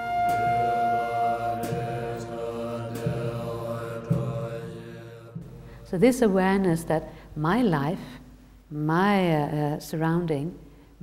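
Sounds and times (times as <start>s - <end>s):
low chanted drone: 0.0s - 5.6s.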